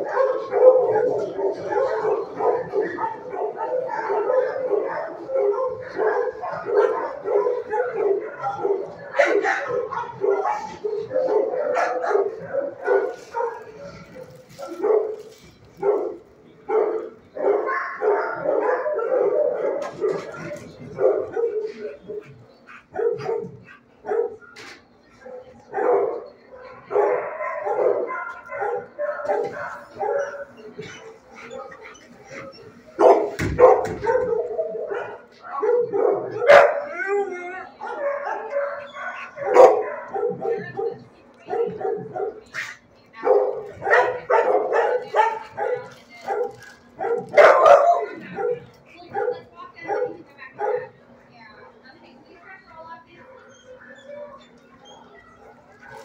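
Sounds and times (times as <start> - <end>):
dogs barking: 0.0 - 51.2, 53.2 - 56.0.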